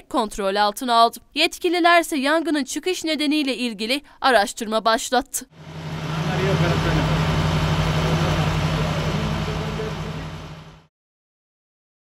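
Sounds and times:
fire engine motor running: 5.6s - 10.9s.

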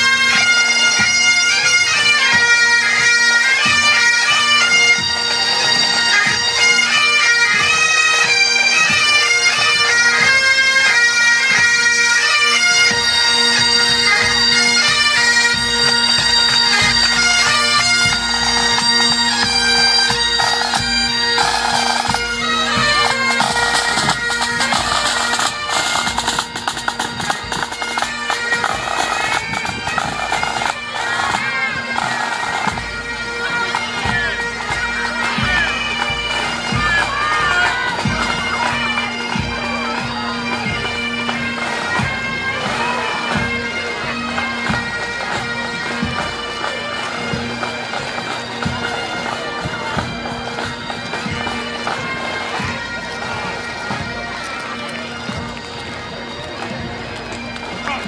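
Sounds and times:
bagpipes playing: 0.0s - 58.0s.

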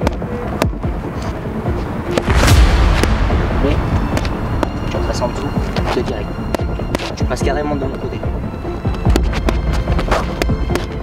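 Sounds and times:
low rushing noise: 0.3s - 7.4s.

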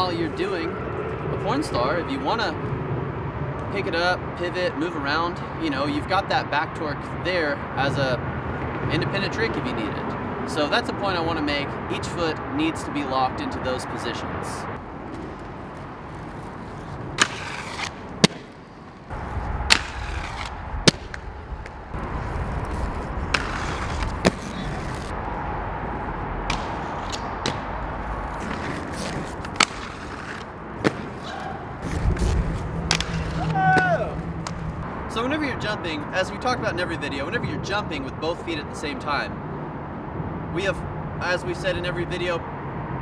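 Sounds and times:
overpass traffic rumble: 0.0s - 43.0s
skate wheels rolling on concrete: 14.8s - 34.9s
skates clacking on concrete: 15.0s - 19.1s, 19.7s - 21.8s, 22.6s - 25.1s, 26.5s - 34.7s.

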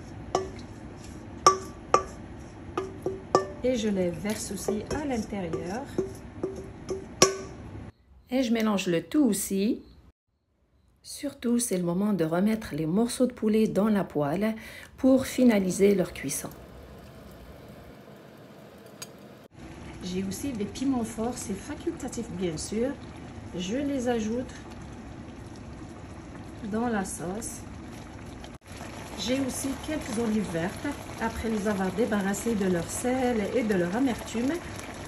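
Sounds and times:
metal bowl taps ringing: 1.4s - 2.2s, 2.8s - 3.7s, 4.3s - 7.6s
sauce sizzling in a frying pan: 15.7s - 35.0s.

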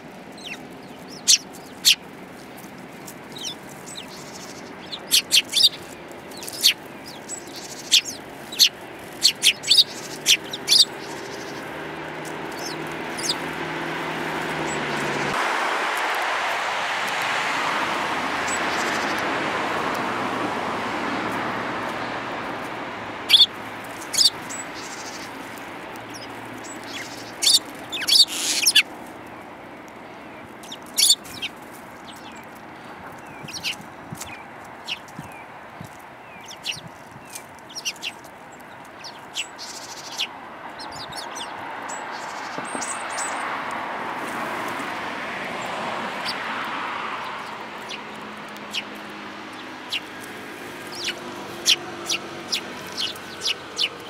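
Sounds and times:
sparrows chirping: 0.0s - 15.4s, 18.3s - 54.0s
broad rushing noise: 0.0s - 54.0s.

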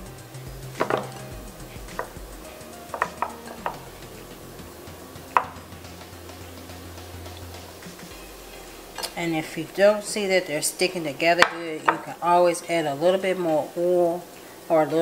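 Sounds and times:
spatula set on wooden board: 0.8s - 1.3s, 2.0s - 2.2s, 2.9s - 3.9s.

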